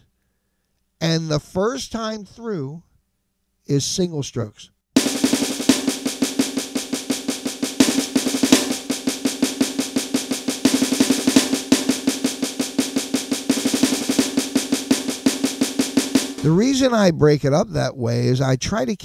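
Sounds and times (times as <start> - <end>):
electronic drum pad strokes: 5.0 - 16.9.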